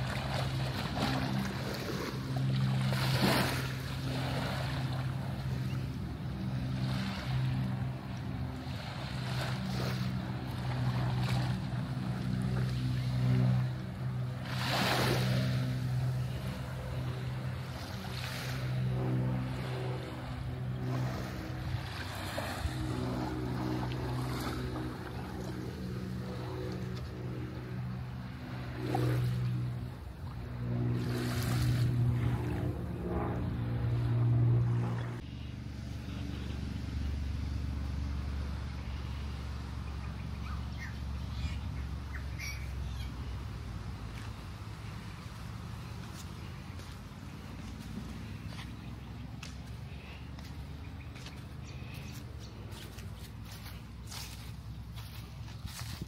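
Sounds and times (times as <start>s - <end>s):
small waves washing onto beach: 0.0s - 32.5s
boat engine hum: 0.0s - 56.0s.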